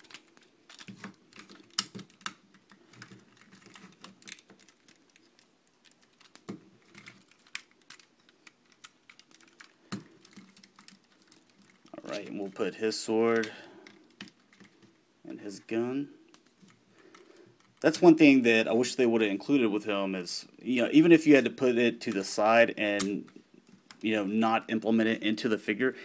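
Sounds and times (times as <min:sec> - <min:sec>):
plastic toy parts clicking and knocking: 0:00.0 - 0:12.6, 0:13.3 - 0:15.0.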